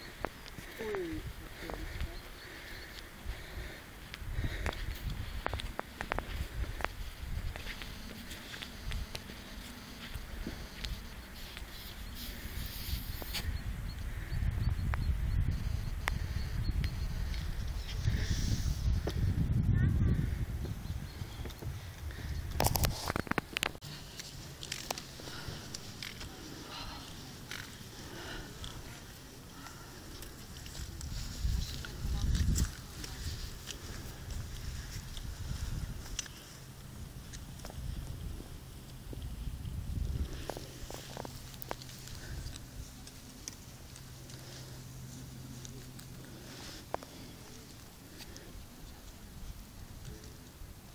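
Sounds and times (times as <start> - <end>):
wind gusting on microphone: 0.0 - 23.8, 25.0 - 43.0.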